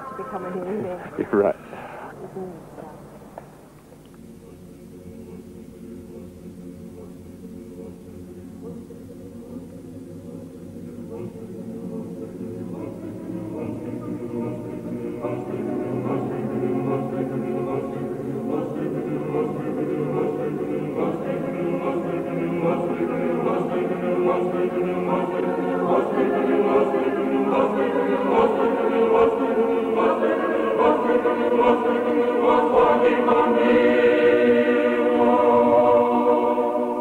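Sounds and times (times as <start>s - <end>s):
choir singing slow music: 0.0s - 37.0s.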